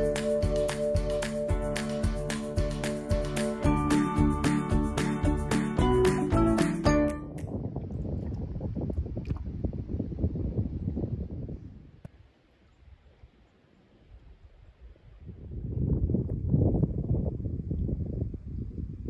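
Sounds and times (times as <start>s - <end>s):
wind rumble on microphone: 7.2s - 19.0s.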